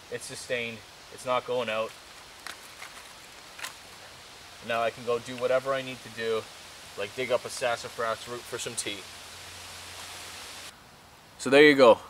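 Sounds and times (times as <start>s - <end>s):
campfire crackling: 0.0s - 11.2s
steady hiss: 0.0s - 12.0s
fire pops: 1.9s - 4.1s.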